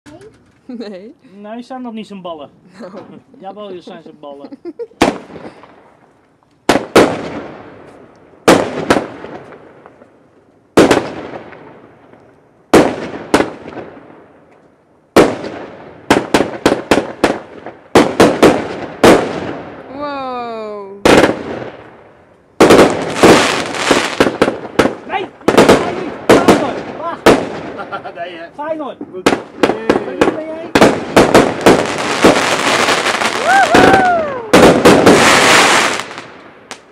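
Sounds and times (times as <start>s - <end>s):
fireworks crackling: 0.1s - 36.9s
fireworks bangs: 2.9s - 20.2s, 21.0s - 36.9s
firework whistle: 32.6s - 36.0s.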